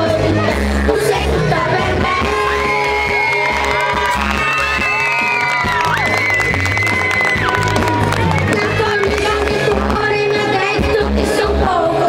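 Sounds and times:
boy singing pop song: 0.0 - 4.1, 8.2 - 12.0
backing track with bass beat: 0.0 - 11.6.

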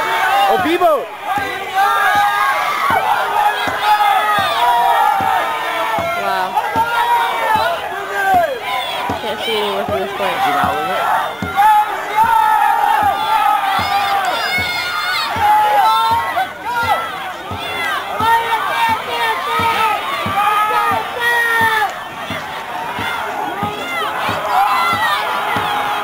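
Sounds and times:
crowd shouting and cheering: 0.0 - 26.0.

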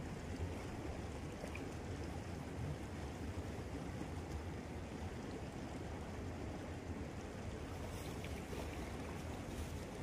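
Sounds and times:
river flowing: 0.0 - 10.0.

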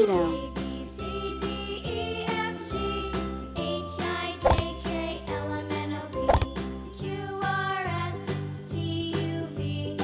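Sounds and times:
cheerful chiming children's music: 0.0 - 10.0.

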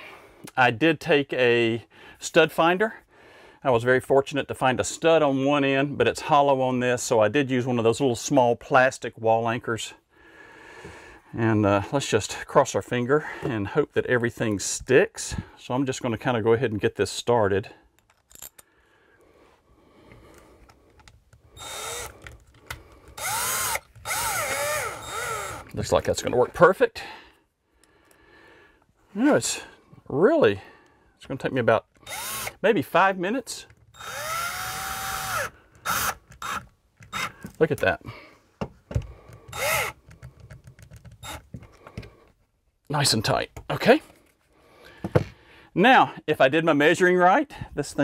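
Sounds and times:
cordless drill driving a screw: 21.5 - 25.8, 32.0 - 32.6, 33.9 - 37.4, 39.5 - 40.0, 41.2 - 41.5.

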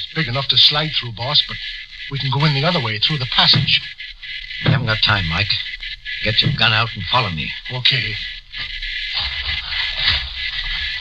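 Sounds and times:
broadcast recording hiss: 0.0 - 11.0
low rubs and knocks: 0.0 - 11.0
scuffling and scraping: 8.6 - 11.0.

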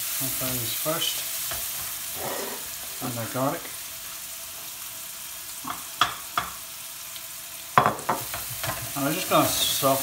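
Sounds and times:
onions frying in oil: 0.0 - 10.0.

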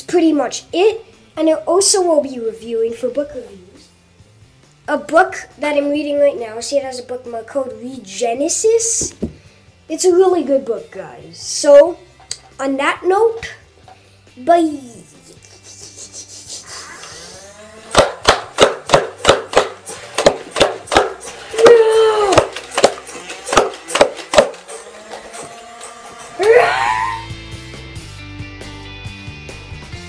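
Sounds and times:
background music: 0.0 - 30.0
toy blaster snaps: 17.9 - 25.3.

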